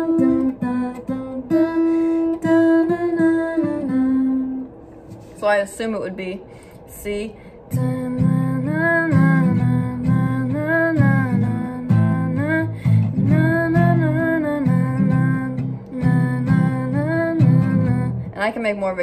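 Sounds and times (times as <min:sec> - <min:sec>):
guitar strumming chords: 0:00.0 - 0:05.3, 0:07.7 - 0:18.4
person singing wordless melody: 0:07.0 - 0:18.4.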